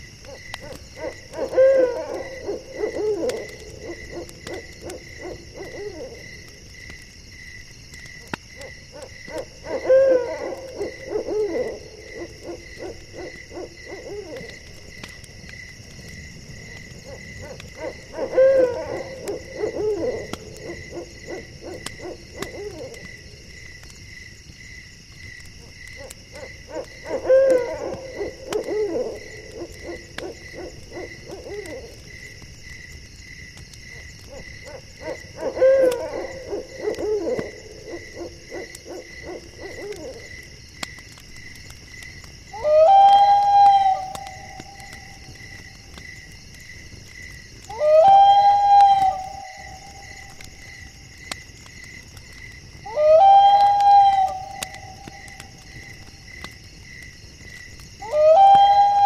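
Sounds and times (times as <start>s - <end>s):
night insects chirping: 0.0s - 59.0s
owl hooting: 1.0s - 6.2s, 9.6s - 14.4s, 17.4s - 22.9s, 26.4s - 31.9s, 34.7s - 40.2s, 42.6s - 45.1s, 47.7s - 50.1s, 52.9s - 55.4s, 58.0s - 59.0s.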